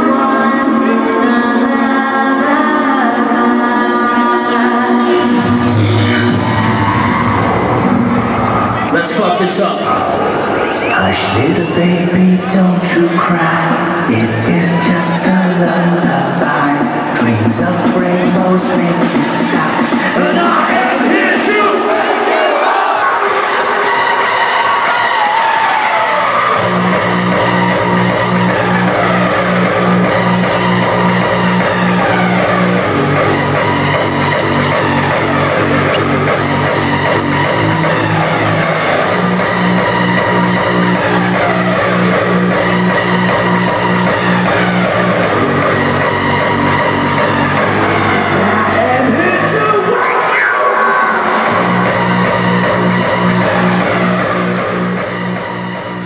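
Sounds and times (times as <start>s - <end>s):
hardstyle dance music: 0.0s - 56.0s
pulsing bass line: 4.9s - 9.6s, 26.5s - 50.1s, 51.2s - 56.0s.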